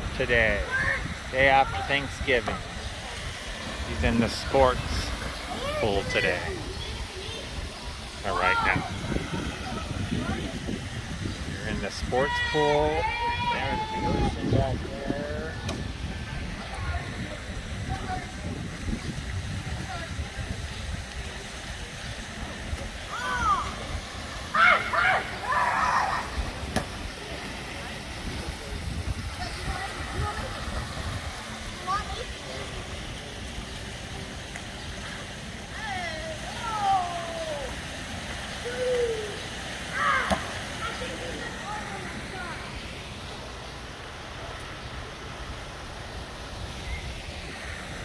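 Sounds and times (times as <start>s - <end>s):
water splashing and sloshing: 0.0s - 48.0s.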